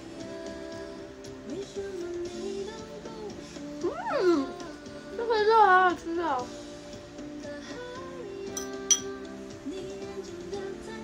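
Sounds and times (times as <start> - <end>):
soft background music: 0.0 - 11.0
metal spoon clinking ceramic bowl: 8.5 - 9.2.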